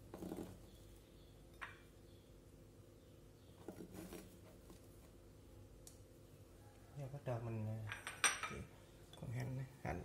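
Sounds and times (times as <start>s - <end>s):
kitchenware clinking: 7.8s - 9.3s.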